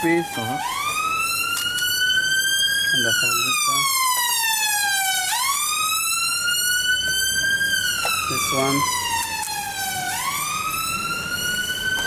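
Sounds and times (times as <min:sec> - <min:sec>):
emergency siren wailing: 0:00.0 - 0:12.0.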